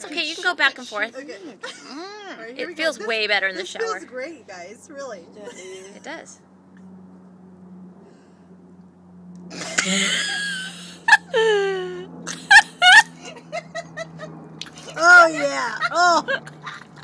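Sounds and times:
steady low hum: 0.0 - 17.0
woman laughing: 5.4 - 6.2, 9.6 - 17.0
woman whimpering and crying: 11.2 - 12.1, 14.8 - 16.4.

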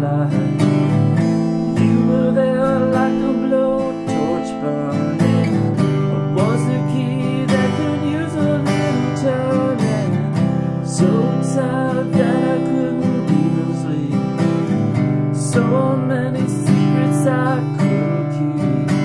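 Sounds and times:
acoustic guitar strumming chords: 0.0 - 19.0.

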